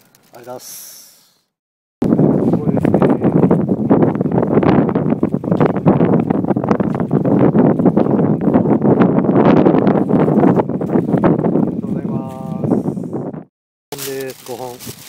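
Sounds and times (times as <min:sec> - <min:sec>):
strong wind buffeting microphone: 0:02.0 - 0:15.0.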